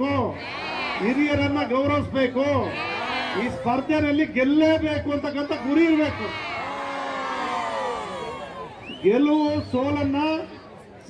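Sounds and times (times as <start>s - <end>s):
man speaking into a microphone: 0.0s - 0.4s, 1.0s - 2.7s, 3.4s - 6.4s, 9.0s - 10.6s.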